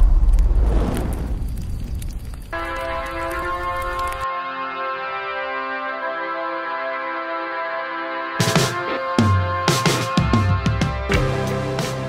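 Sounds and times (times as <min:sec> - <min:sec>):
deep booming hit: 0:00.0 - 0:01.7
sustained synthesizer chord: 0:04.2 - 0:09.3.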